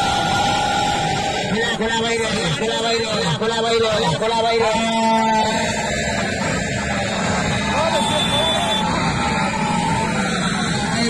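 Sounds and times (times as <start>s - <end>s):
men talking over one another: 1.2s - 6.0s.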